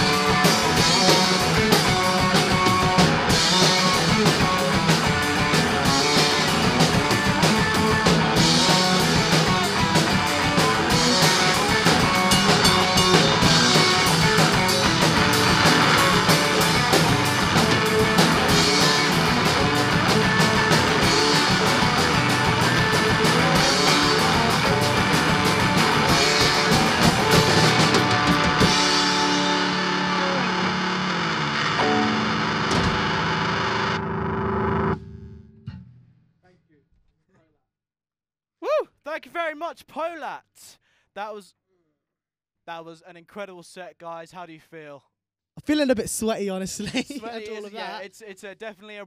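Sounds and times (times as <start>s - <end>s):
drum kit: 0.0s - 33.9s
electric guitar: 0.0s - 35.9s
bass guitar: 0.0s - 36.1s.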